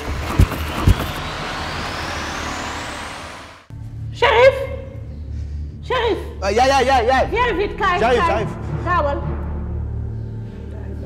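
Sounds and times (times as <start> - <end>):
rising whoosh: 0.2 - 3.7.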